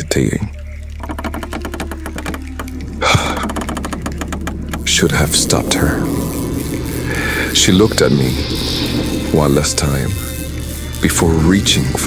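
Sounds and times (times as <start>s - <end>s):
steady low drone: 0.0s - 12.0s
rapid mechanical clicking: 0.8s - 12.0s.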